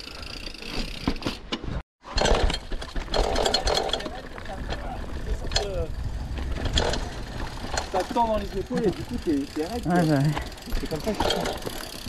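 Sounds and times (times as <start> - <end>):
bike chain and frame rattling: 0.0 - 1.5, 2.1 - 12.0
wind rumble on microphone: 4.6 - 7.7.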